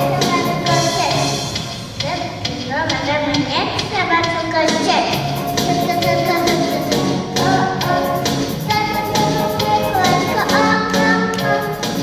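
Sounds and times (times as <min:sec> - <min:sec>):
children's song backing track: 0:00.0 - 0:12.0.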